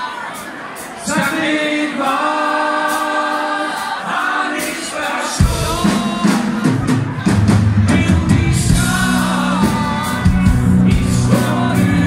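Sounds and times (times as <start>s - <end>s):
male voices singing in harmony: 1.0s - 6.9s, 7.8s - 12.0s.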